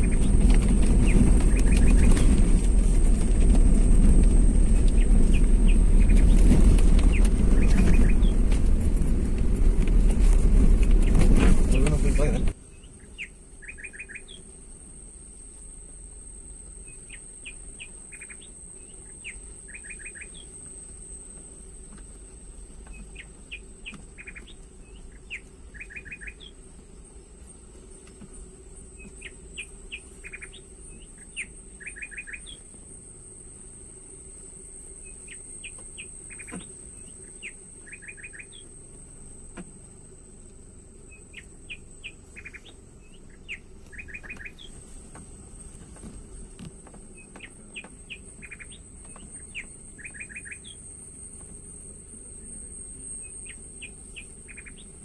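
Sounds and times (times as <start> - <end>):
songbird singing: 0.0 - 55.0
steady high-pitched whine: 0.0 - 55.0.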